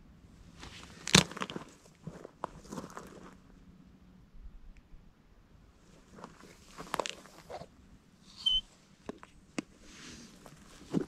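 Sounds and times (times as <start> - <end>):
footsteps on dry twigs: 0.6 - 3.4, 6.0 - 7.7
short high chirp: 8.3 - 8.7.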